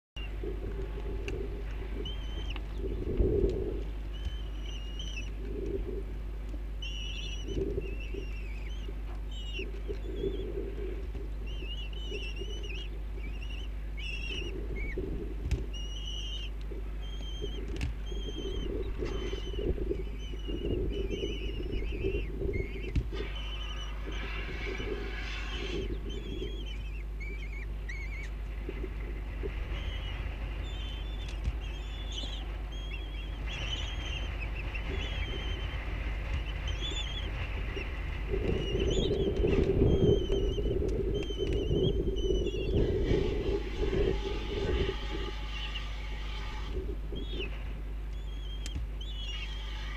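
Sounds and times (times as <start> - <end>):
steady low hum: 0.2 - 49.9
high bird chirps: 2.0 - 3.2, 4.1 - 5.4, 6.7 - 10.5, 11.4 - 15.0, 15.7 - 42.8, 47.1 - 47.6, 48.2 - 49.9.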